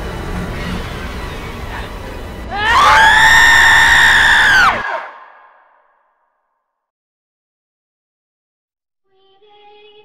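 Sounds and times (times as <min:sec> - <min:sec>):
woman screaming: 0:02.5 - 0:05.5.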